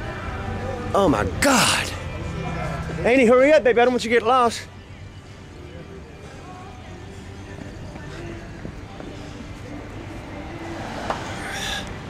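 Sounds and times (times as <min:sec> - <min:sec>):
faint distant amplified music: 0:00.0 - 0:12.0
murmur of voices: 0:00.0 - 0:12.0
street and engine rumble: 0:00.0 - 0:12.0.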